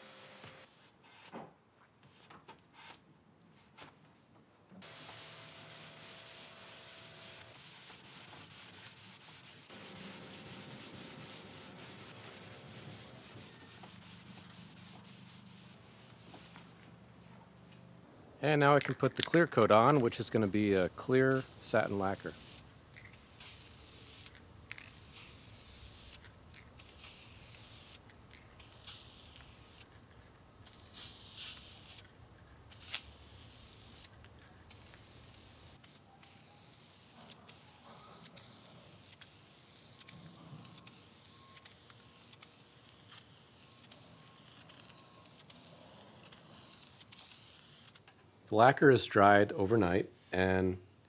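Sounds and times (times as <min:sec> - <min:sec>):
spray can hissing: 0:04.8 - 0:16.7, 0:18.7 - 0:29.9, 0:30.6 - 0:32.1, 0:32.7 - 0:48.0.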